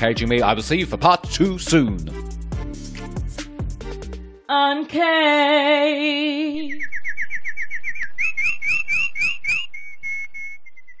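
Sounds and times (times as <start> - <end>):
whistled bird-like chirps: 6.6 - 11.0.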